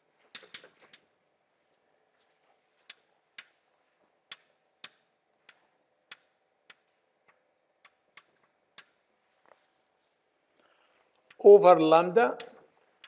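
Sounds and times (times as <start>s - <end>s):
faint room hum: 0.0s - 13.0s.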